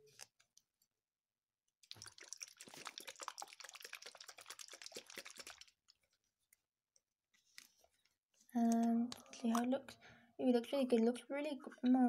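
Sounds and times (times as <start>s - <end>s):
liquid sloshing in toy bottle: 1.8s - 6.4s, 8.6s - 9.8s.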